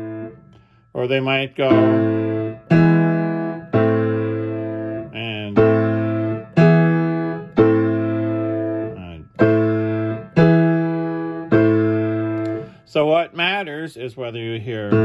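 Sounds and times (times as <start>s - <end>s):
piano block chords: 0.0s - 15.0s.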